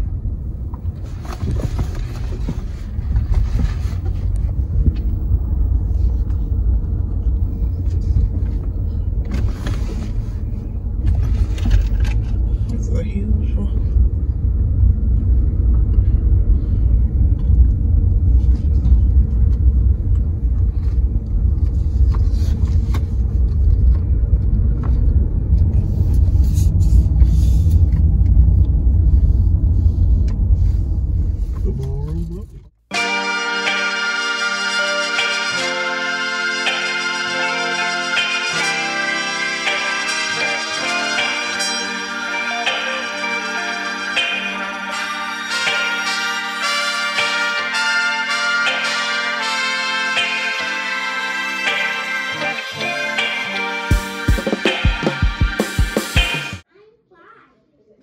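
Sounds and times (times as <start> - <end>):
car engine and tyres rumbling: 0.0 - 32.9.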